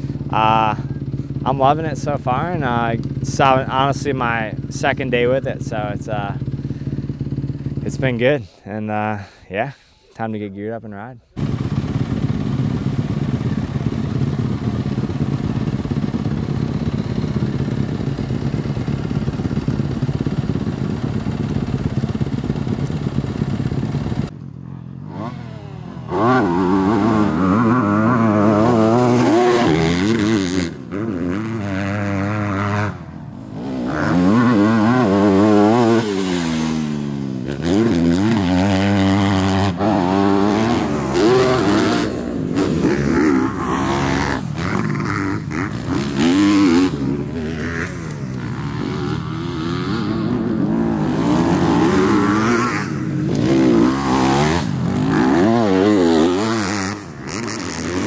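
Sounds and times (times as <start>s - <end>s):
motocross bike engine revving: 0.0s - 9.4s, 11.4s - 24.3s, 24.9s - 58.0s.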